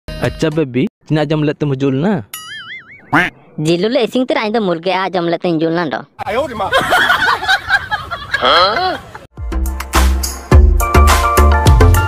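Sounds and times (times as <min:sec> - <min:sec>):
intro music with bass beat: 0:09.4 - 0:12.0.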